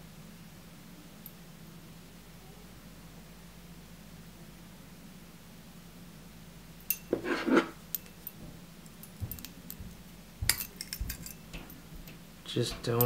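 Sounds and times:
small metal clicks and clinks: 7.9 - 13.0.

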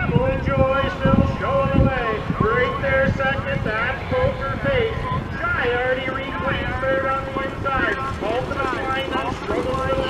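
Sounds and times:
race announcer over loudspeakers: 0.0 - 10.0.

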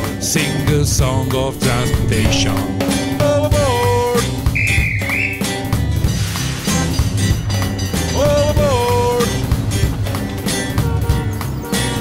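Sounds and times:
children's song with guitar and drums: 0.0 - 12.0.

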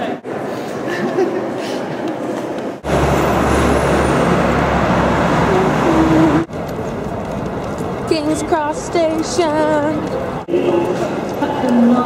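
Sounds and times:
vehicle rumbling: 2.6 - 12.0.

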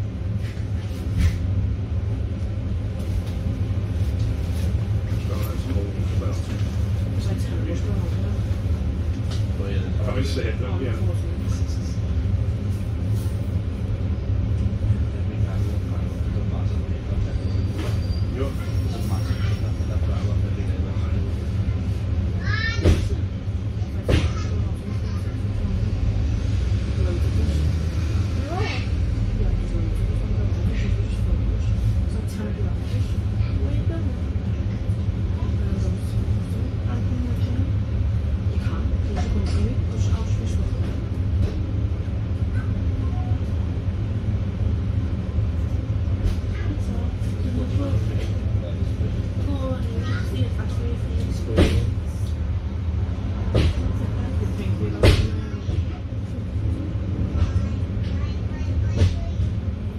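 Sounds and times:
bus engine rumbling: 0.0 - 59.9.

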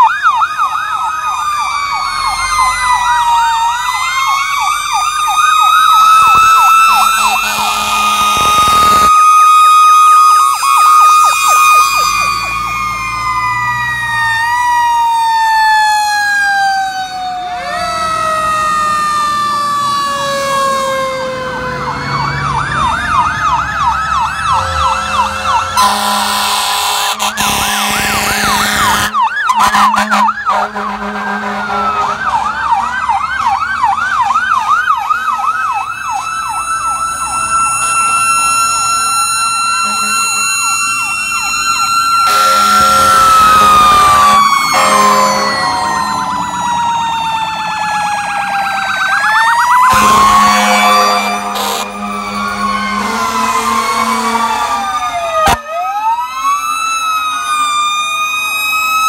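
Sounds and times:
fire truck sirens: 0.0 - 59.0
mechanical siren winding down: 0.0 - 59.0
air horn blasts: 6.2 - 9.1, 24.6 - 32.3, 39.8 - 40.8, 42.2 - 46.3, 49.9 - 54.8.

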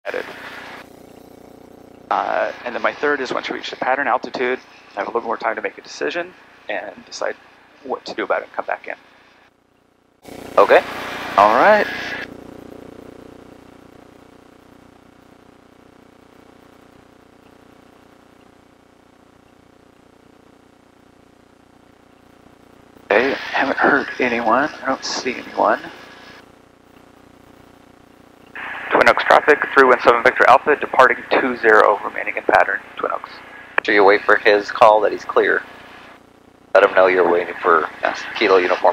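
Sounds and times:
radio transmit hiss: 0.1 - 9.5, 10.2 - 38.9
pilot's radio call: 2.1 - 9.0, 10.6 - 12.3, 23.1 - 26.4, 28.6 - 36.1, 36.8 - 38.9.

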